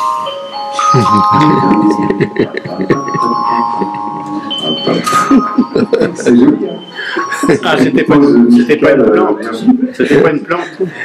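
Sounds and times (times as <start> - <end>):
soft chiming electronic notes: 0.0 - 8.7
murmuring voices: 0.9 - 11.0
laughter: 1.7 - 4.3, 5.0 - 6.4.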